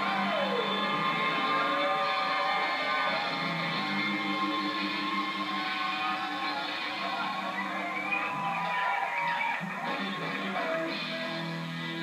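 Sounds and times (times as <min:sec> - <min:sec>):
reggae band playing live: 0:00.0 - 0:12.0.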